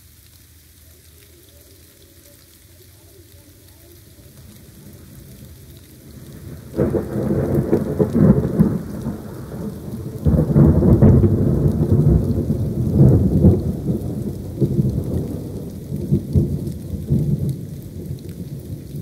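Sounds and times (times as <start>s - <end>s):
steady rain: 0.0s - 19.0s
thunder rolling: 4.2s - 19.0s.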